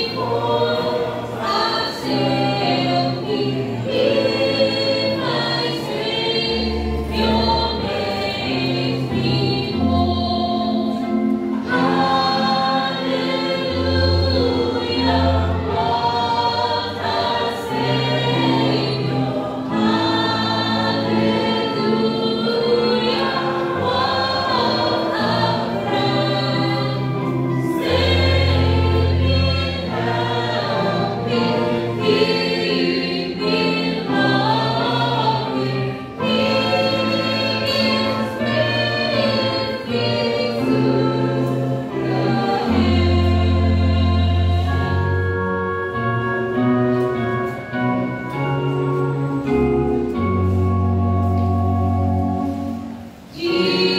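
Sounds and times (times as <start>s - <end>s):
congregation singing a hymn: 0.0s - 53.9s.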